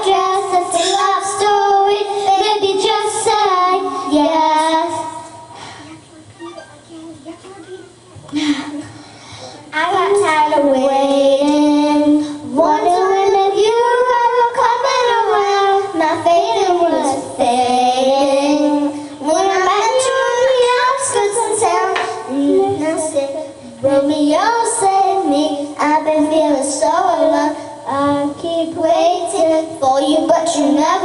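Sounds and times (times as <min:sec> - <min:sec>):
girls singing a pop song: 0:00.0 - 0:31.0.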